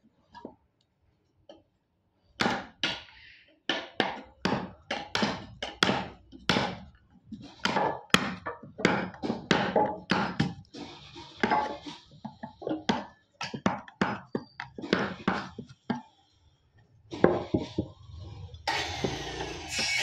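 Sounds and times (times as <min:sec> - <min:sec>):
hammer striking chisel: 0:07.6 - 0:10.6.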